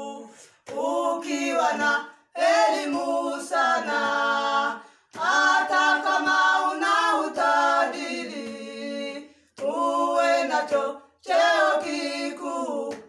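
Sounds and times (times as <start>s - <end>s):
women singing a cappella: 0.0s - 13.0s.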